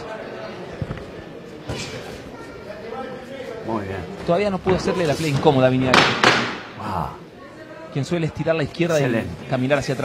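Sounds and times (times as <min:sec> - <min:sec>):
crowd ambience in hall: 0:00.0 - 0:10.0.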